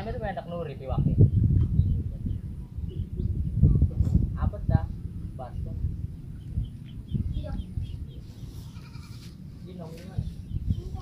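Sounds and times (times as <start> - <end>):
goat bleating: 8.7 - 9.4.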